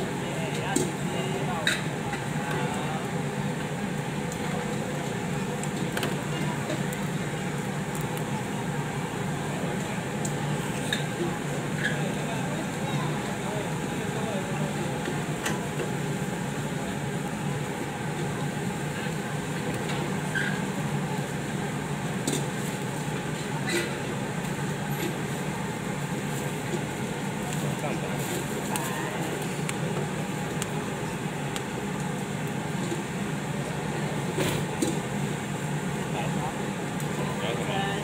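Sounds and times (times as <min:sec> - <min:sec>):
low hum with hiss: 0:00.0 - 0:38.0
outdoor food stall noise: 0:00.0 - 0:38.0.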